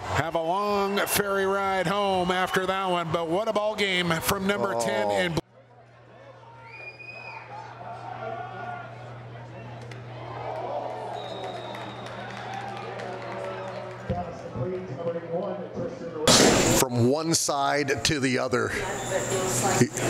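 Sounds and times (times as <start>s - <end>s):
people talking and calling out: 0.3s - 6.5s.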